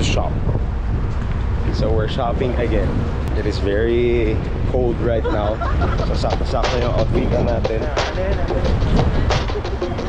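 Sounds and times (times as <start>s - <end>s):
low outdoor rumble: 0.0s - 10.0s
man laughing and talking: 4.9s - 8.0s
background music: 5.3s - 10.0s.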